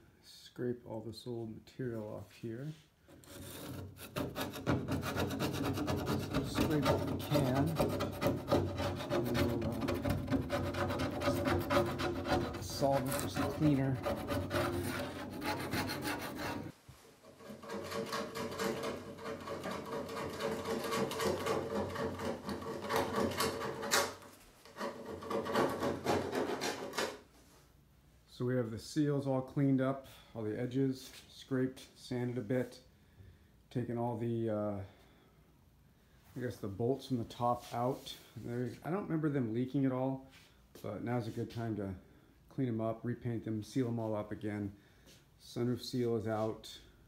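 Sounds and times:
hand scraping seal material: 3.1 - 27.3.

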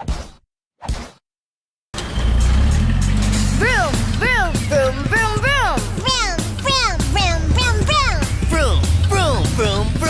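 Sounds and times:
cartoon car engine rumbling: 2.0 - 10.0
music: 2.0 - 10.0.

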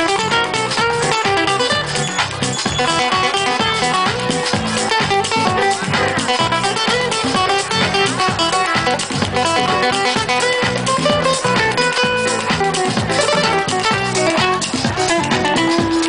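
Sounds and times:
acoustic guitar strumming: 0.0 - 16.0
hand percussion: 0.0 - 16.0
keyboard: 0.0 - 16.0.

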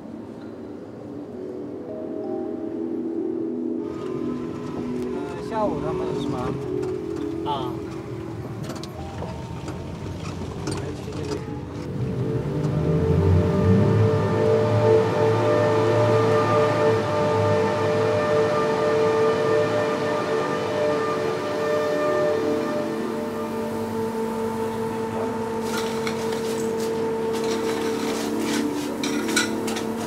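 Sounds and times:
steady droning tones: 0.0 - 30.0
vehicle engine rumbling: 3.9 - 30.0.

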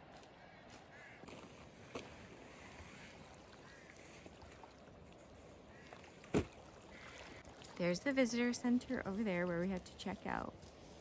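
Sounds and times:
outdoor background noise: 0.0 - 11.0
woman speaking: 7.8 - 10.6.

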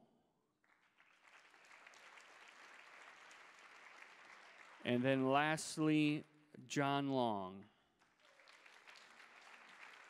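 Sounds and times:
faint applause: 0.6 - 5.4, 8.0 - 10.0.

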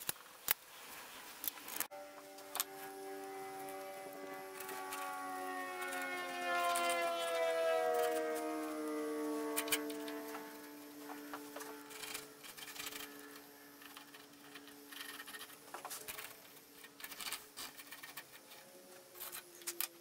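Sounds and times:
aircraft drone passing over: 1.9 - 15.6.

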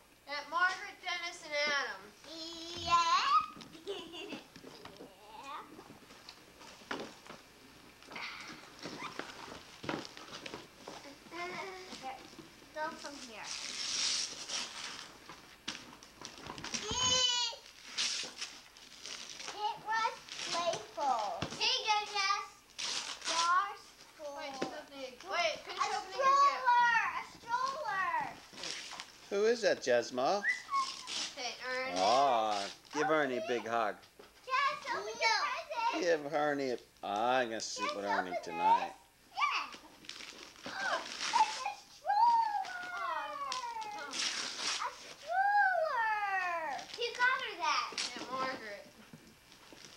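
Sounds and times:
child's high voice: 2.3 - 3.6, 16.8 - 17.6, 25.8 - 28.4, 34.5 - 36.0, 37.8 - 39.8, 40.7 - 48.7
wrapping paper crackling: 13.0 - 21.4, 22.0 - 24.1, 27.6 - 29.2, 30.7 - 33.0, 39.7 - 48.6, 49.5 - 49.9
children exclaiming: 16.8 - 17.6, 30.4 - 31.2, 40.7 - 44.2, 44.8 - 47.7.

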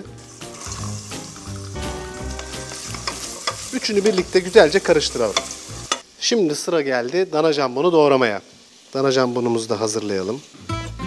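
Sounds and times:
background music held notes: 0.0 - 6.0, 10.6 - 11.0
vegetables sizzling in oil: 0.0 - 11.0.

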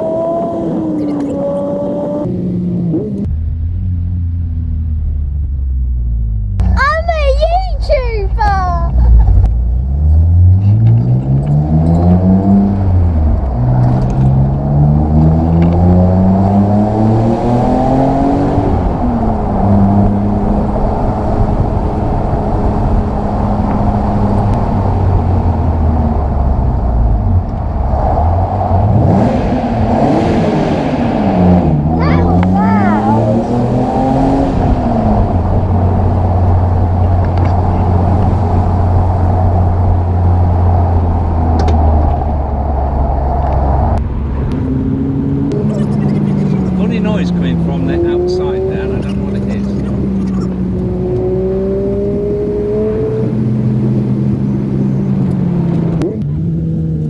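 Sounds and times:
car engine accelerating: 8.8 - 57.0.

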